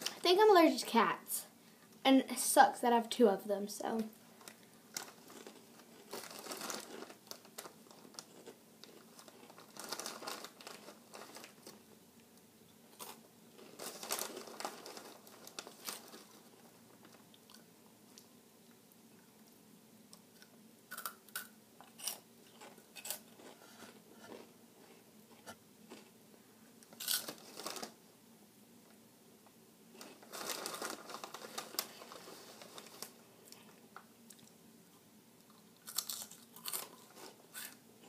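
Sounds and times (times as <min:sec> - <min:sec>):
plastic snack bag crinkling: 0:04.4 - 0:11.9, 0:12.9 - 0:17.6, 0:26.9 - 0:28.0, 0:29.9 - 0:33.7, 0:35.8 - 0:37.8.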